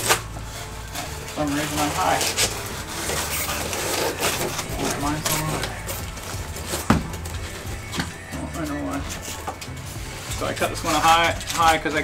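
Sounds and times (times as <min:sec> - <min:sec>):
background music: 0:00.0 - 0:12.0
foam board knocking: 0:03.9 - 0:08.2.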